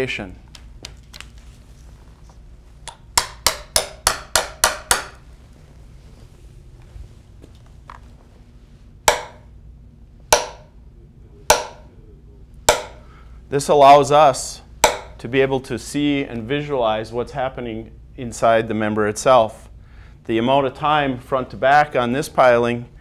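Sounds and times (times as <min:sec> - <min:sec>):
hammer tapping steel probe: 0:02.8 - 0:05.2, 0:09.1 - 0:09.5, 0:10.3 - 0:10.7, 0:11.5 - 0:11.9, 0:12.6 - 0:13.1, 0:14.8 - 0:15.2.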